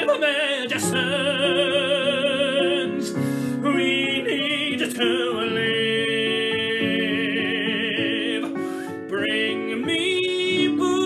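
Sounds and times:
singer's breath: 3.2 - 3.6, 8.6 - 9.0.

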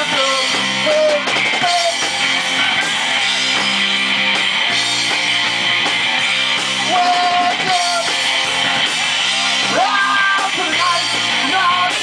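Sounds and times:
punk rock band playing: 0.0 - 12.0.

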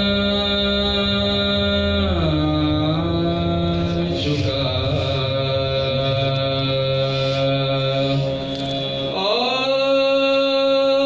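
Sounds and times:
man singing elegy: 0.0 - 11.0.

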